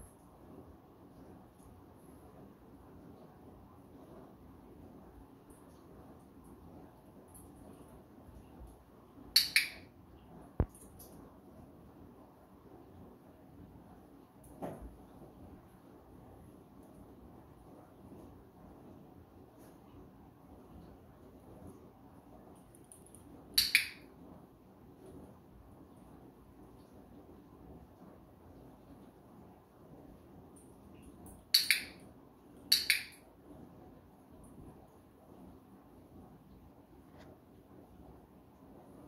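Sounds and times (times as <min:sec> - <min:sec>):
dog-training clicker click: 0:09.4 - 0:09.8, 0:23.6 - 0:24.0, 0:31.6 - 0:32.0, 0:32.7 - 0:33.2.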